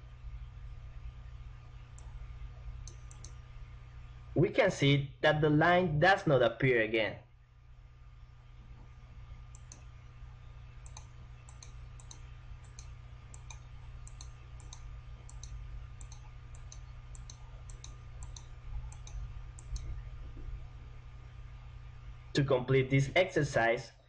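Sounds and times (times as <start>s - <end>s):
low electrical hum: 0.0s - 24.0s
computer mouse clicking: 2.8s - 3.4s, 9.5s - 9.9s, 10.8s - 20.4s.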